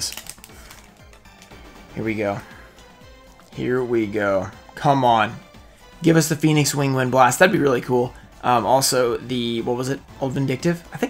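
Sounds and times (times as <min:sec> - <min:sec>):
foil wrapper crinkling: 0:00.0 - 0:01.5
faint background music: 0:00.0 - 0:11.0.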